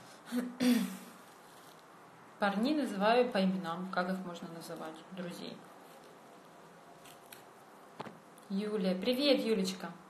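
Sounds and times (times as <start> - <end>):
peel tearing and crackling: 7.0 - 7.6.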